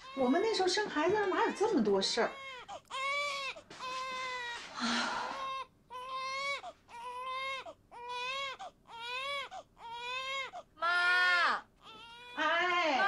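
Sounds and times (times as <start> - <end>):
newborn baby crying: 0.0 - 13.0.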